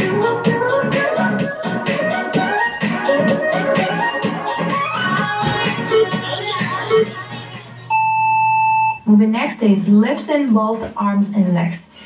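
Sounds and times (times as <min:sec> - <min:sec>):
background music: 0:00.0 - 0:09.1
electronic timer beep: 0:07.9 - 0:09.0.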